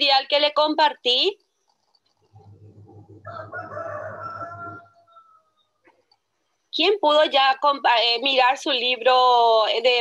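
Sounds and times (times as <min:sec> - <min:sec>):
rooster crowing: 0:03.2 - 0:05.8.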